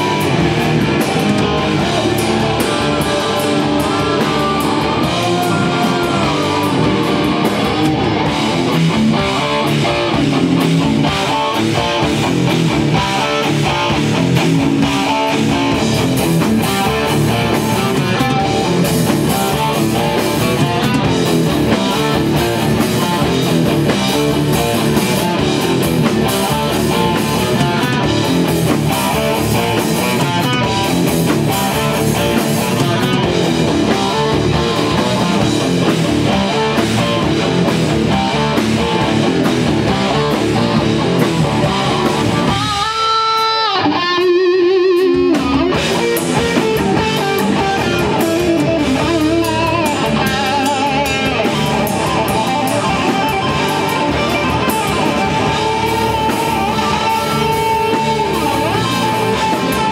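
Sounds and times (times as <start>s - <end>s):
electric guitar held wavering notes: 0.0s - 59.9s
live rock band playing loud: 0.0s - 59.9s.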